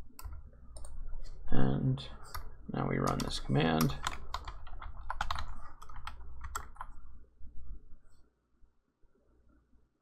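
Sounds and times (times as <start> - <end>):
typing on computer keyboard: 2.3 - 7.0.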